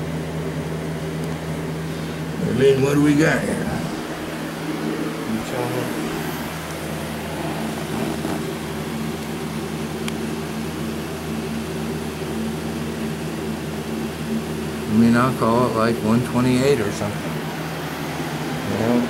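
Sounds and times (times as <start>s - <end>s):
space heater humming and rushing: 0.0s - 19.0s.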